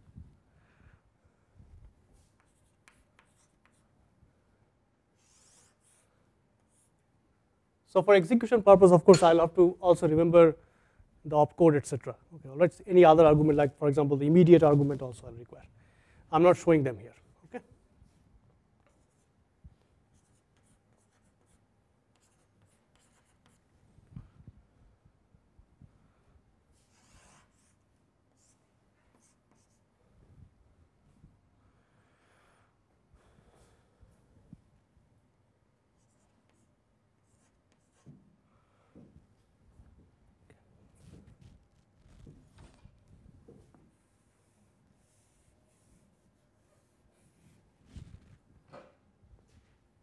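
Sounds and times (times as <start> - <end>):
chalk tapping and scratching: 2.2 - 3.9, 18.8 - 23.7, 26.8 - 29.8, 36.0 - 38.2.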